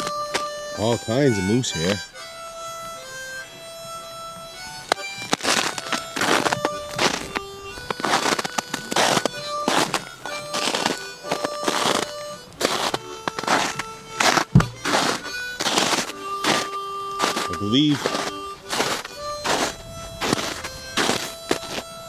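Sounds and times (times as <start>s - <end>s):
slow background music: 0.0s - 22.0s
footsteps crunching through snow: 4.9s - 22.0s
dull bump: 12.9s - 21.8s.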